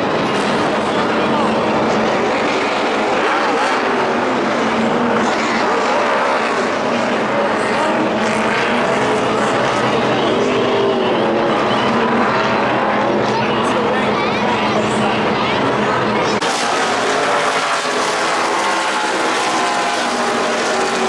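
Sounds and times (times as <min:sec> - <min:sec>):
race car engines roaring: 0:00.0 - 0:21.0.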